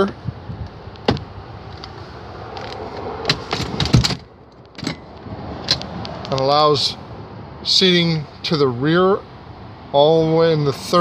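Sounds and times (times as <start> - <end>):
seat latch clicks and rattles: 0.9 - 1.9, 2.6 - 6.5.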